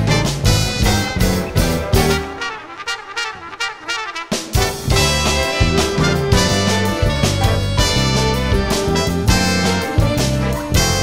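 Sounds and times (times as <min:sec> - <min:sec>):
horns playing light passage: 0:00.0 - 0:11.0
jazz big band playing bossa nova: 0:00.0 - 0:11.0.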